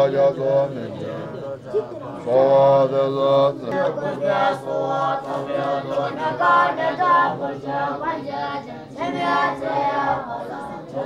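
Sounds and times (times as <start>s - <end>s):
monks chanting: 0.0s - 11.0s.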